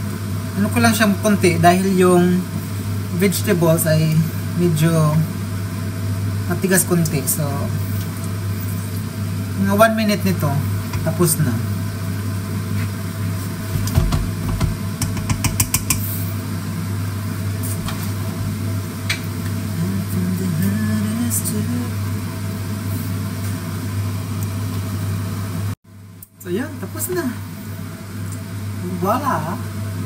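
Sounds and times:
steady low hum: 0:00.0 - 0:30.0
spoon clicking against pan: 0:15.0 - 0:16.1.

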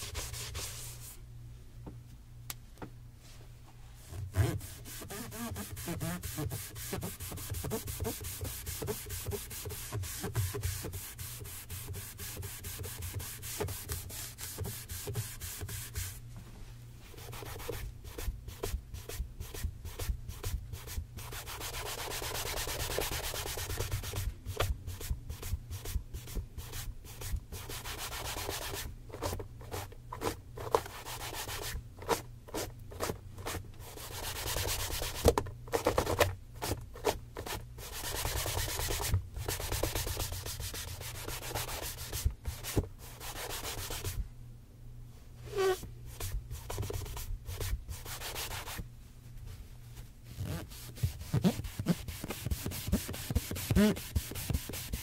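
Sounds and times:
rubbing strokes buffing shoe: 0:00.0 - 0:01.2, 0:04.3 - 0:16.2, 0:17.1 - 0:28.9, 0:37.4 - 0:44.2, 0:45.5 - 0:48.8, 0:50.3 - 0:55.0.

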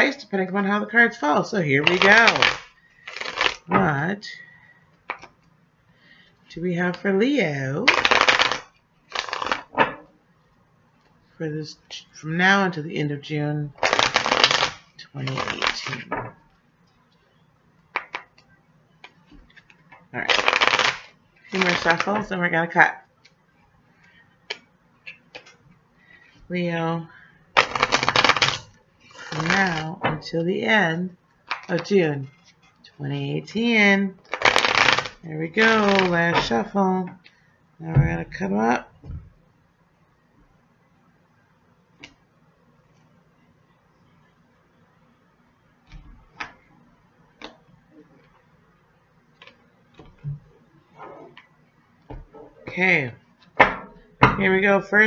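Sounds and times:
cards clicking while shuffled: 0:18.0 - 0:22.2.

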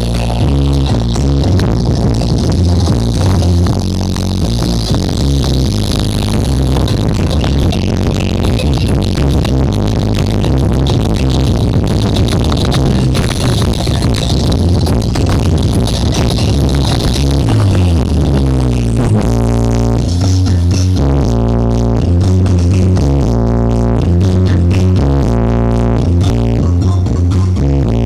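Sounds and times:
electronic dance music with heavy bass: 0:00.0 - 0:28.0
pitched bass line: 0:00.0 - 0:28.0.

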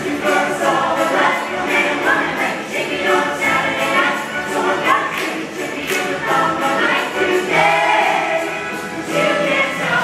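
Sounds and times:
musical accompaniment: 0:00.0 - 0:10.0.

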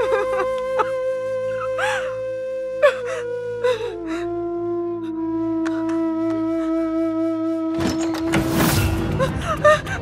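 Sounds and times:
held woodwind note: 0:00.0 - 0:09.0.

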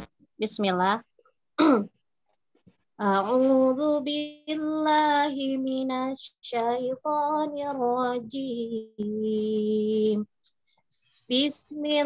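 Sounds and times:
woman clearing her throat: 0:01.6 - 0:01.9.

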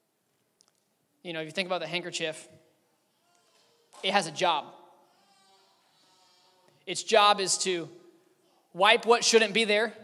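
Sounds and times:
man speaking in echoing hall: 0:01.1 - 0:05.2, 0:06.6 - 0:10.0.

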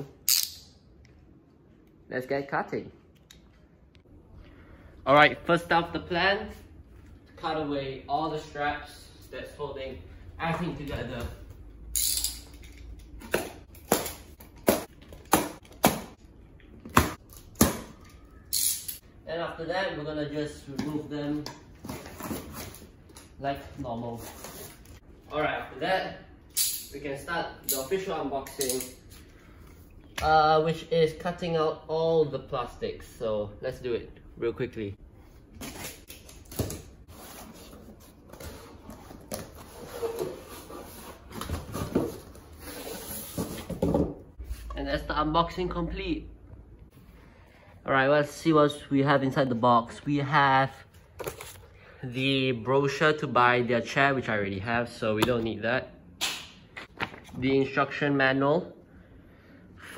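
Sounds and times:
cardboard rustling and scraping: 0:37.0 - 0:44.1.

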